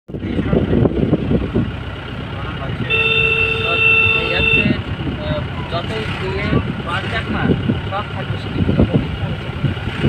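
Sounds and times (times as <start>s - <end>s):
car road noise from inside: 0.1s - 10.0s
vehicle horn: 2.8s - 4.8s.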